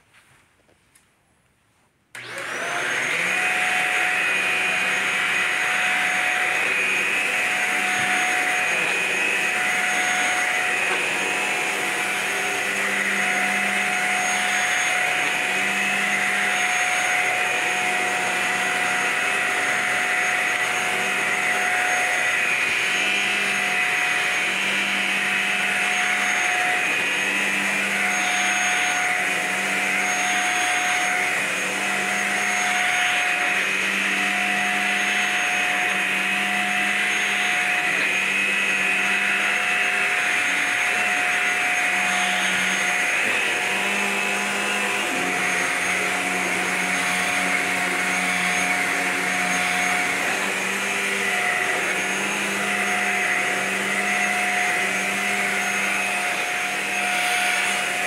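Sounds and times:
vacuum cleaner motor whining: 0:02.1 - 0:58.0.

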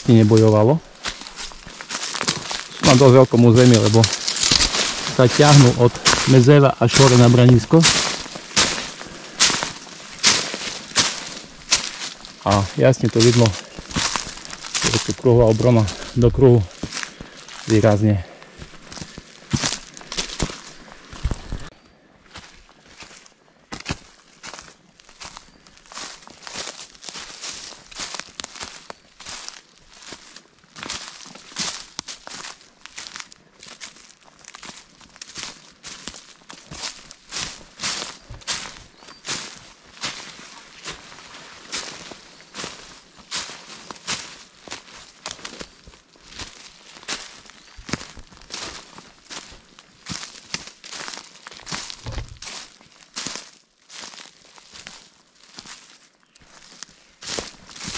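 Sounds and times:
footsteps crunching dry leaves: 0:00.0 - 0:57.9.

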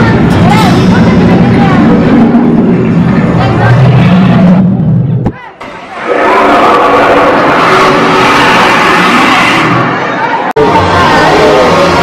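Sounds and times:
dragon roaring: 0:05.7 - 0:12.0.

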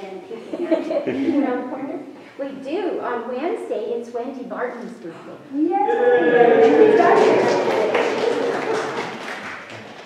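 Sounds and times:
people clapping: 0:05.9 - 0:10.0.

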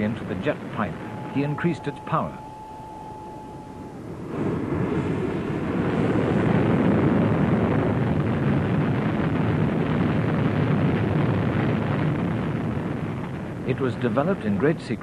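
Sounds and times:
jet engine high whine: 0:00.0 - 0:09.8
jet engine rushing roar: 0:00.0 - 0:14.8.

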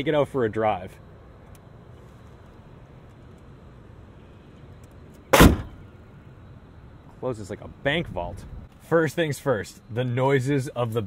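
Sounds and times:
car hood slammed shut: 0:05.3 - 0:05.8.

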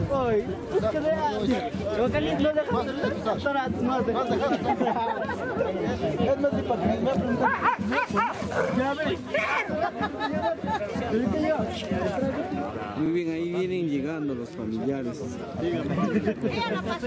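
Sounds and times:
people chatting: 0:00.0 - 0:17.0.

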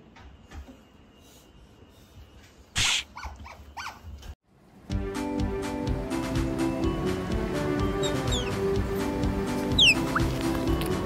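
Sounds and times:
cat calling: 0:09.7 - 0:10.4.

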